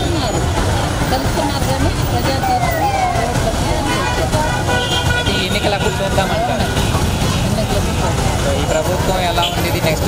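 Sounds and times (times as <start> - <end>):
woman speaking into microphone: 0.0 - 4.8.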